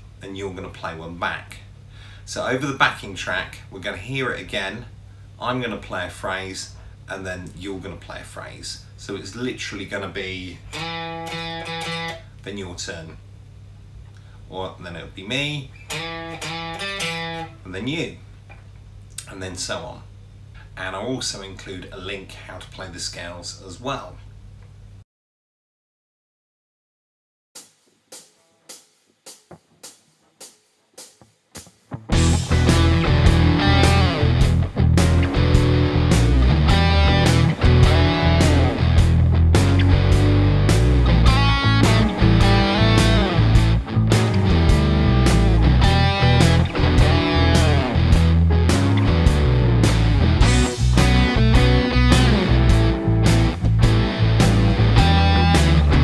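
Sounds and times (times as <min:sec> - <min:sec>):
blues backing track: 0:10.6 - 0:12.3, 0:15.7 - 0:17.6, 0:28.1 - 0:56.0
electric guitar blues lead: 0:10.7 - 0:12.3, 0:15.8 - 0:17.6, 0:31.9 - 0:56.0.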